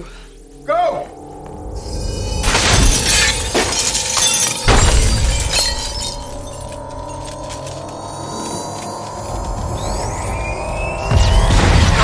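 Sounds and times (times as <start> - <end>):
film score music: 0.0 - 12.0
glass shattering: 2.4 - 8.0.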